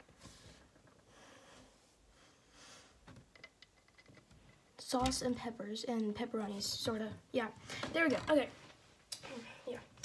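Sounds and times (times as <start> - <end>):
faint breaths: 0.2 - 3.2.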